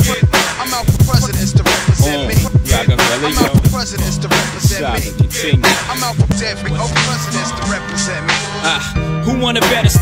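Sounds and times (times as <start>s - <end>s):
hip-hop drum beat: 0.0s - 7.3s
person rapping: 0.0s - 10.0s
booming kick drums: 0.8s - 4.1s.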